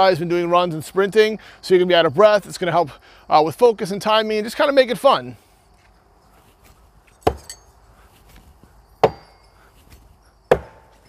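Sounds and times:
axes striking wooden target: 7.2s - 7.6s, 9.0s - 9.4s, 10.5s - 11.0s.

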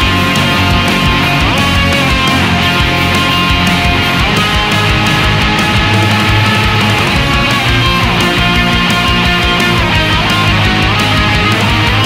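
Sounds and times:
electric bass: 0.0s - 12.0s
electric guitars: 0.0s - 12.0s
steady drumbeat: 0.0s - 12.0s.

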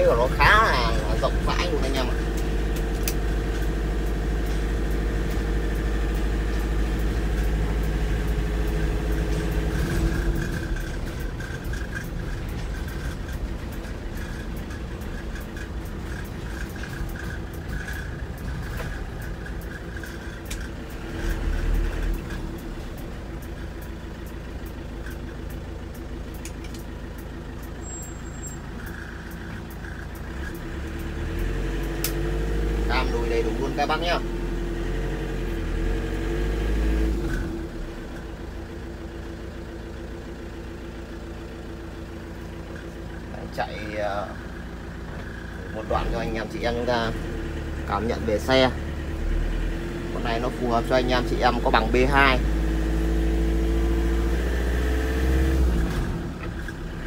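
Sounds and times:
diesel engine running: 0.0s - 57.0s.

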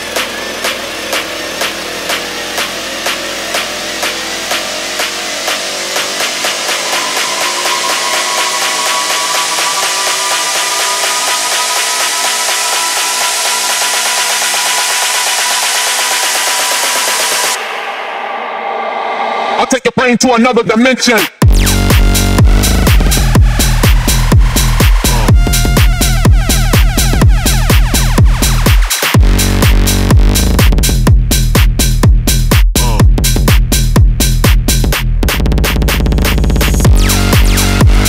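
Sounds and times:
electronic dance music build-up: 0.0s - 20.2s, 20.9s - 38.0s
noise riser: 1.6s - 19.7s
rising tone: 2.2s - 19.7s.

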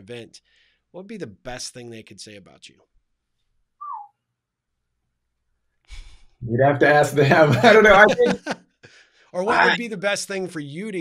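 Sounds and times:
descending whistle: 3.8s - 4.1s.

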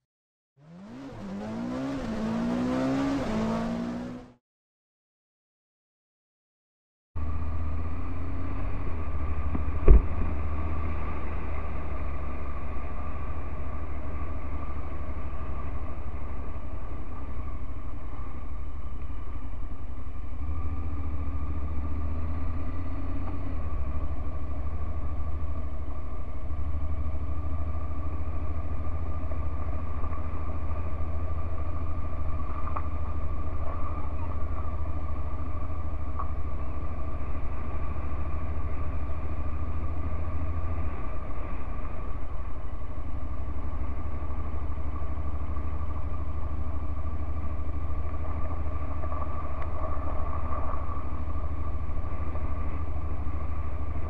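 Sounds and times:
motorcycle engine running: 0.6s - 4.4s, 7.2s - 54.0s.

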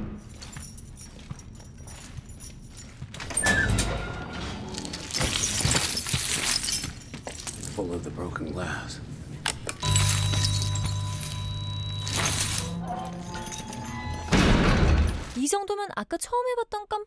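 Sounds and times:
chain clinking: 0.0s - 3.5s, 4.6s - 8.0s, 9.8s - 14.3s
footsteps crunching broken glass: 4.8s - 7.8s.

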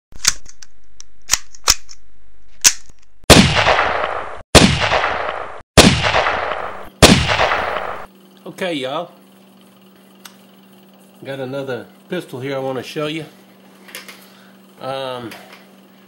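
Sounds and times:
gunshots with echoing tail: 3.3s - 8.1s.

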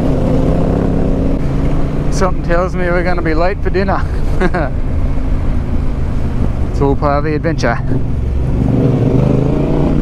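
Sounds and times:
wind noise: 0.0s - 7.1s
motorcycle engine cruising: 0.0s - 10.0s.

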